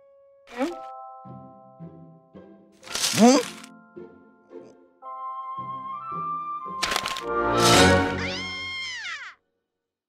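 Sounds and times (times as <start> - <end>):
cartoon character whimpering cry: 3.0 - 3.6, 8.2 - 9.4.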